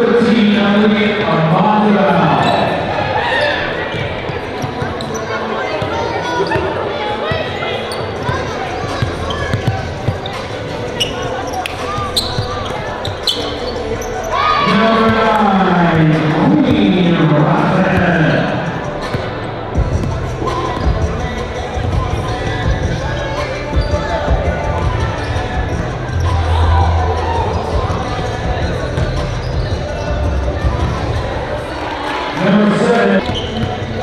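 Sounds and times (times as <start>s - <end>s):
players' voices: 0.0s - 34.0s.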